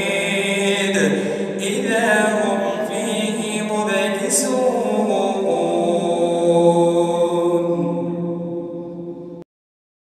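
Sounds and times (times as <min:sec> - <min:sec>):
man reciting melodically: 0:00.0 - 0:08.2.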